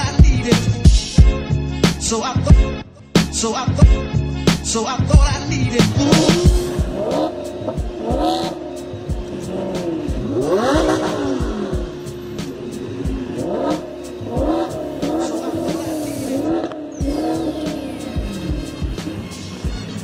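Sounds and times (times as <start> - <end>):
music with steady beat: 0.0 - 20.0
sports car engines revving: 4.4 - 20.0.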